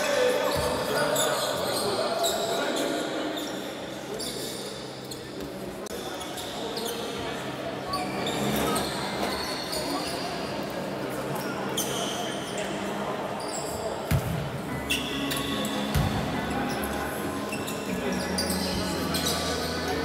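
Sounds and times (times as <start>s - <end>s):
voices of players: 0.0s - 20.0s.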